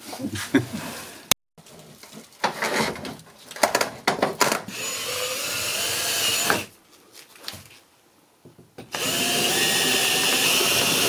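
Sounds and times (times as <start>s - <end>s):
cordless drill driving screw into metal: 4.7s - 6.7s, 8.9s - 11.0s.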